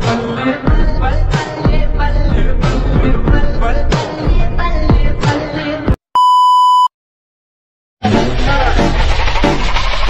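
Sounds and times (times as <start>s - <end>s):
steady electronic beep: 6.2s - 6.9s.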